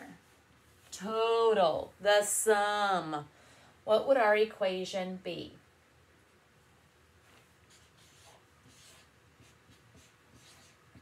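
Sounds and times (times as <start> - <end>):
marker scratching on paper: 7.3 - 11.0.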